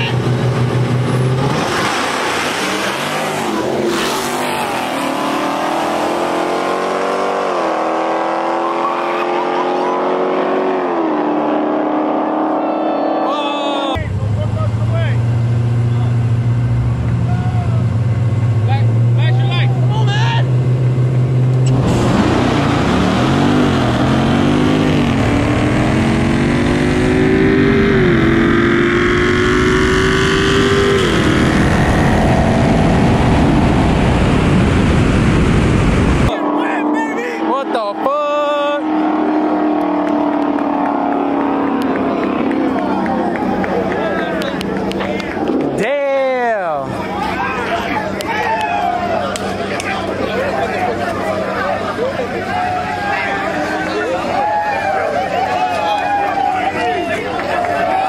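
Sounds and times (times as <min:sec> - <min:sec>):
car engines idling: 0:00.0 - 0:01.5, 0:13.3 - 0:28.8, 0:30.6 - 0:58.0
car accelerating with upshifts: 0:00.2 - 0:13.9, 0:20.4 - 0:45.8.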